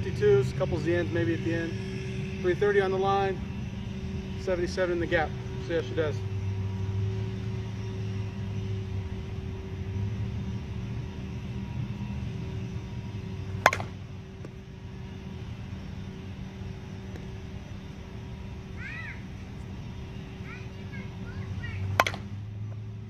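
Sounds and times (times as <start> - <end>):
steady low hum: 0.0 - 23.0
bat striking a softball: 13.6 - 14.6, 21.9 - 22.4.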